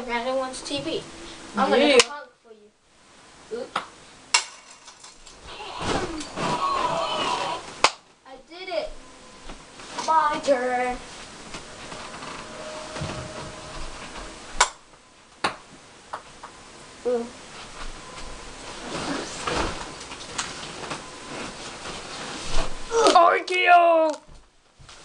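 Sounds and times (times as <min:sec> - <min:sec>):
rustle of movement on bedding: 0:09.4 - 0:14.6, 0:17.4 - 0:22.9.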